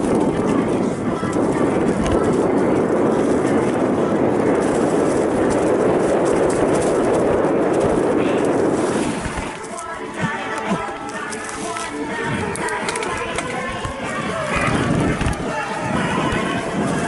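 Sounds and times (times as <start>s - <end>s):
bike clattering over bumps: 0.0s - 11.8s
tyre noise on dirt: 0.0s - 17.0s
wind rushing on microphone: 0.0s - 17.0s.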